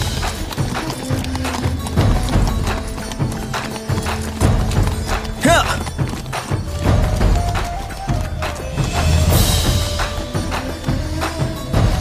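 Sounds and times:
background music: 0.0 - 12.0
horse hooves clip-clopping: 0.0 - 12.0.

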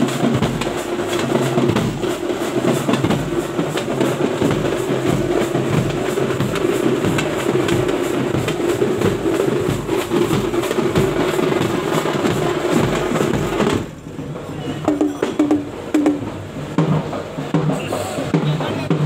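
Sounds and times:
bass drums beaten fast: 0.0 - 14.0, 14.9 - 19.0.

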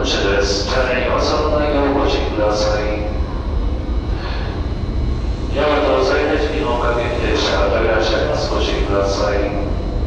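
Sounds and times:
low rumble of train platform: 0.0 - 10.0.

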